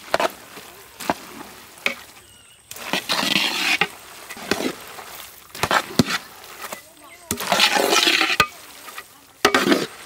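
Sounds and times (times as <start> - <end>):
stirring in a metal pot: 0.0 - 10.0.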